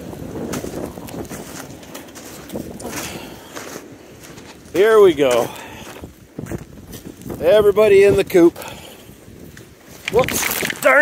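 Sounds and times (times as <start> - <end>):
footsteps in wet snow: 0.0 - 7.7, 8.7 - 11.0
wind rushing on microphone: 0.0 - 11.0.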